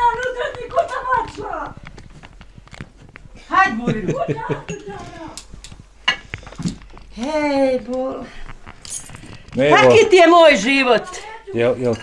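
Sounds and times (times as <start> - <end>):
person talking: 3.5 - 5.4.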